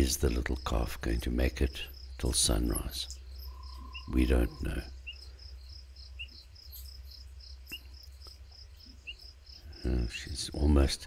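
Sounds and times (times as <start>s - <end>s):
cricket low single chirp: 0.0s - 10.4s
crickets chirping fast: 0.0s - 11.0s.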